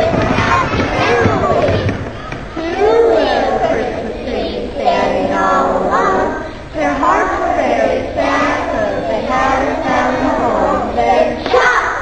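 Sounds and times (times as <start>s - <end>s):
children singing together: 0.0s - 12.0s.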